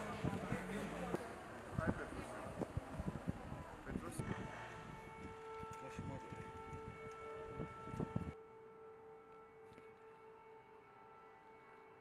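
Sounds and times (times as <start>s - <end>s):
street background: 0.0s - 12.0s
faint steady siren: 2.6s - 12.0s.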